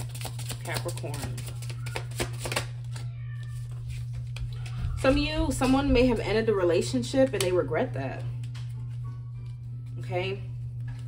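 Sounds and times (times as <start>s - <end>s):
cards clicking and flicking: 0.0s - 3.1s
low hum: 2.7s - 11.0s.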